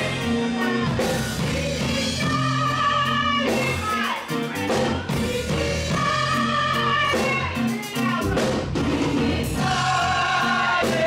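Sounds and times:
choir singing held notes: 0:08.8 - 0:11.0.

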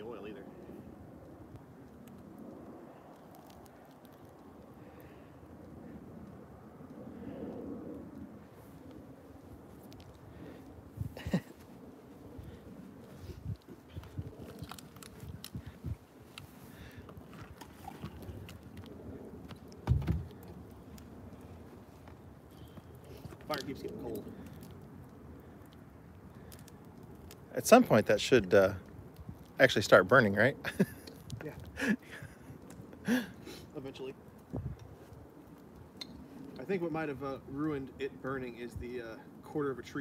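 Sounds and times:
wood fire crackling and popping: 0:00.0 - 0:40.0.

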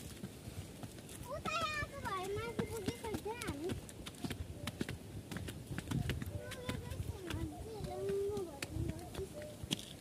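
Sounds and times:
footsteps on concrete steps: 0:00.0 - 0:10.0.

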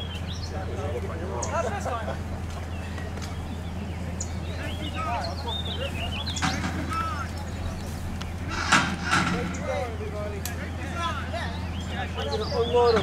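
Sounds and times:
armored vehicle engine drone: 0:00.0 - 0:13.0
men calling out: 0:00.5 - 0:13.0.

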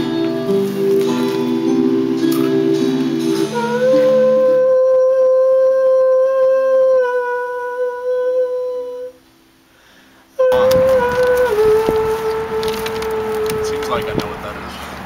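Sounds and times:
outdoor background noise: 0:00.0 - 0:15.0
man singing long note: 0:03.4 - 0:09.2, 0:10.4 - 0:14.2.

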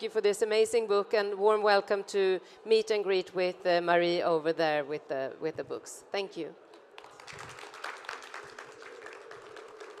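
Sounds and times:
audience applauding: 0:07.0 - 0:10.0.

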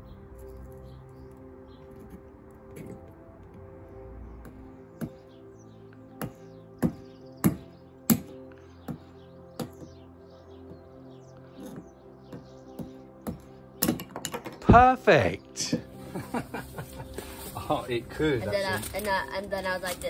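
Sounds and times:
background music with held tones: 0:00.0 - 0:20.0.

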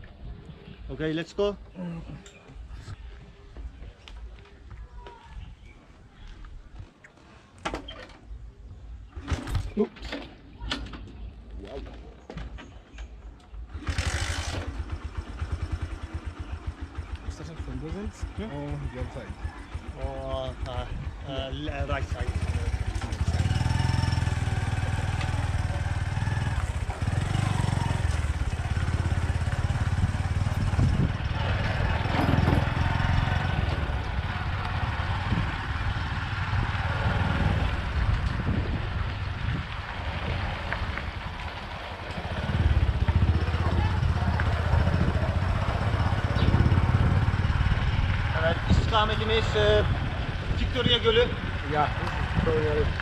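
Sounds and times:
small motorcycle engine running: 0:13.7 - 0:53.0.

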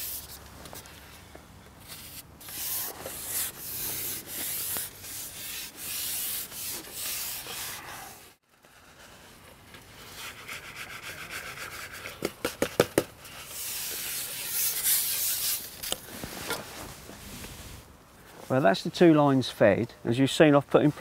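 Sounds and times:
fishing pole rubbing and scraping: 0:01.8 - 0:08.4.

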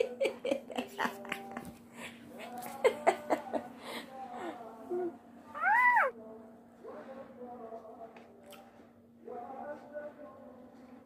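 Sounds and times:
baby monkey high call: 0:05.6 - 0:06.1.

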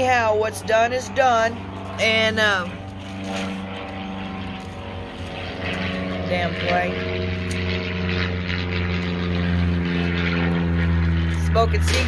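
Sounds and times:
engine drone: 0:00.0 - 0:12.0.

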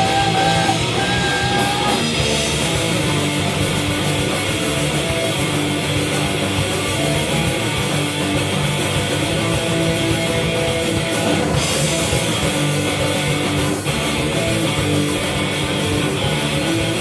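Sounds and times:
distorted electric guitars: 0:00.0 - 0:17.0
drums: 0:00.0 - 0:17.0.

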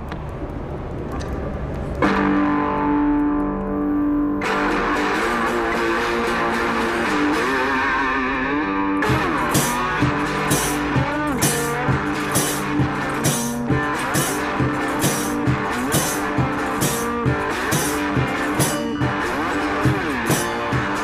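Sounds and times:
distorted guitar notes: 0:02.0 - 0:21.0
drum hits with cymbals: 0:09.1 - 0:21.0.

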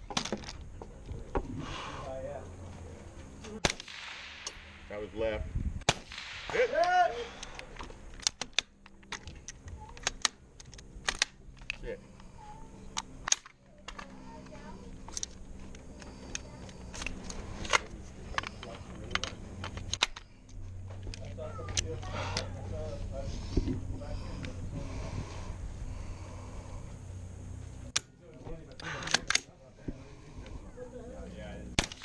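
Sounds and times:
rifle shots: 0:03.6 - 0:04.9, 0:05.8 - 0:07.4
bullets hitting steel targets: 0:31.8 - 0:32.0.

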